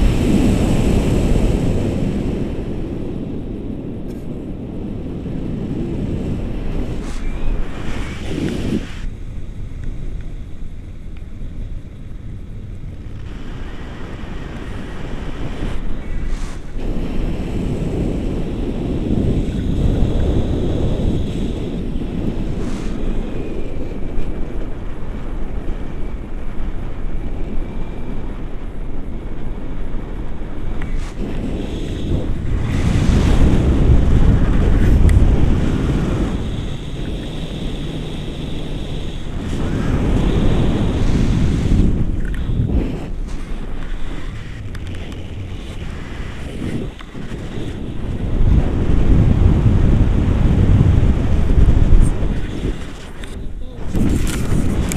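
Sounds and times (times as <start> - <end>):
wind buffeting microphone: 0.0 - 54.9.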